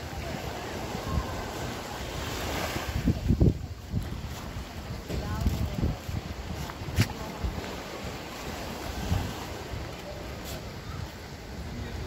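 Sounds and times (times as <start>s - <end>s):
small waves washing on sand: 0.0s - 12.0s
wind buffeting microphone: 0.0s - 12.0s.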